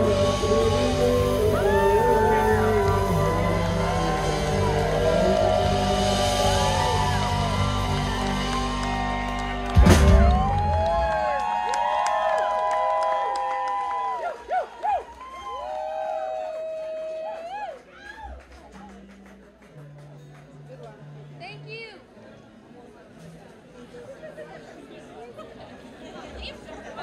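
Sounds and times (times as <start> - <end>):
live band playing: 0.0 - 11.3
audience cheering and whooping: 0.0 - 18.6.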